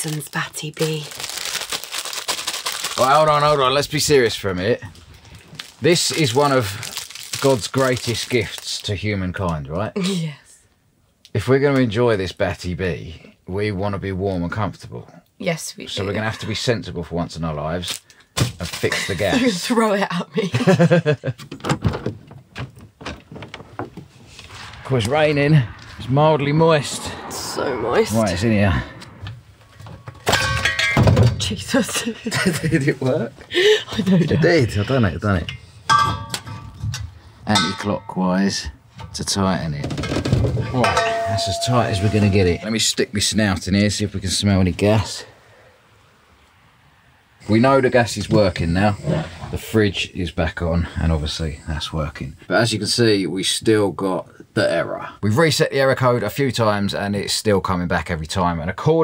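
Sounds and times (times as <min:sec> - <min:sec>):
plastic wrapper crinkling: 0:00.0 - 0:03.6, 0:05.2 - 0:09.0
metal fittings clanking: 0:35.5 - 0:38.2, 0:40.6 - 0:42.8
loud metallic clang ringing: 0:35.9 - 0:36.8, 0:37.5 - 0:38.2, 0:40.7 - 0:42.9.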